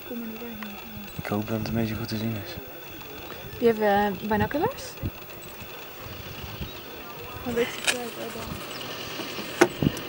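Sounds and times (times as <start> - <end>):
low uneven rumble: 0.0 - 10.0.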